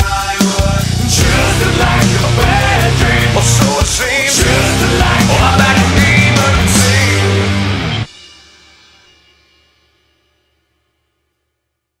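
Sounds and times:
rock band final hit: 0.0s - 8.2s.

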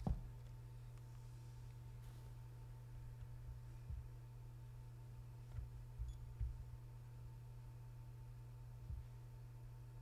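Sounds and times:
soft footsteps on steps: 0.0s - 4.8s, 5.4s - 7.0s, 8.8s - 9.3s
steady low hum: 0.0s - 10.0s.

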